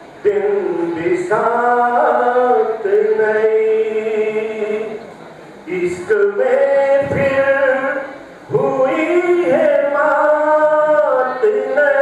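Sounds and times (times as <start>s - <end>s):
man singing chant-like melody: 0.2s - 5.1s, 5.7s - 12.0s.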